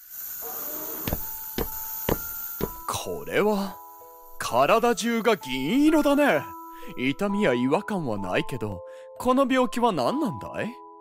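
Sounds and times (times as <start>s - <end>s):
steady hiss: 0.0s - 7.2s.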